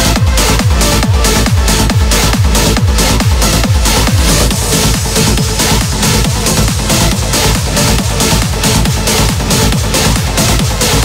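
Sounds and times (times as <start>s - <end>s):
four-on-the-floor kick drum: 0.0s - 11.0s
rolling bassline: 0.0s - 11.0s
trance music: 0.0s - 11.0s.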